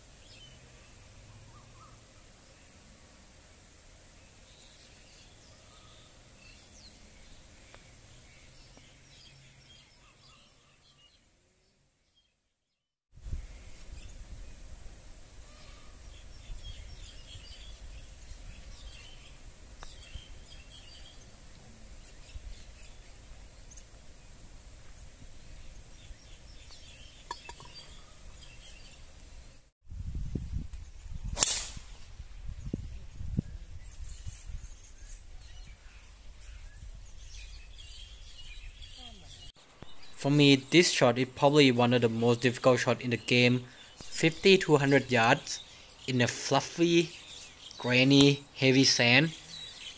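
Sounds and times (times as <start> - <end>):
birds chirping: 3.5 - 12.4, 15.3 - 24.4, 25.0 - 29.7, 32.6 - 49.9
golf club striking ball: 31.4 - 31.9.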